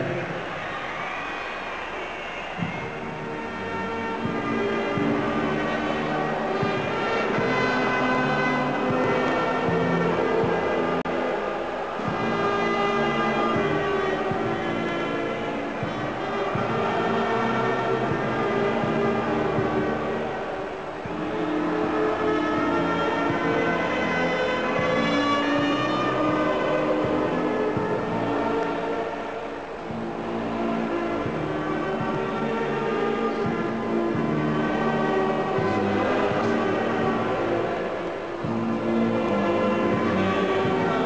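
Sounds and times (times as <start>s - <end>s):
brass band playing: 2.7s - 41.0s.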